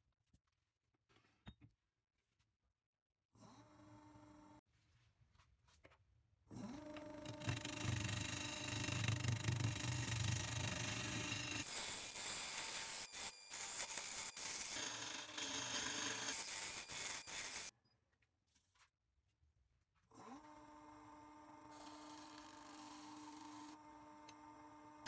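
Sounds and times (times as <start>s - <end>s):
lathe motor hum: 6.8s - 17.7s, 20.4s - 25.0s
turning tool scraping spinning wood: 7.2s - 17.7s.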